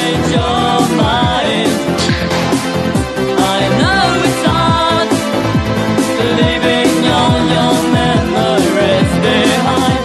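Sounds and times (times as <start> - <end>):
electronic dance music: 0.8 - 8.2.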